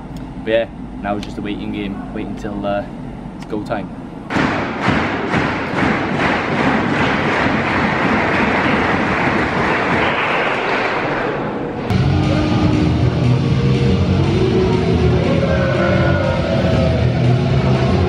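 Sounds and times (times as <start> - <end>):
loud arena crowd noise: 5.7 - 18.0.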